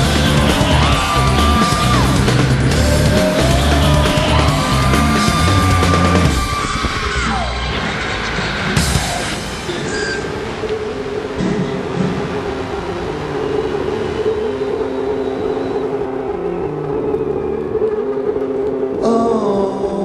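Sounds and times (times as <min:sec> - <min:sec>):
held low notes: 0:00.0 - 0:20.0
noisy haze: 0:00.0 - 0:20.0
sustained droning tone: 0:00.0 - 0:20.0.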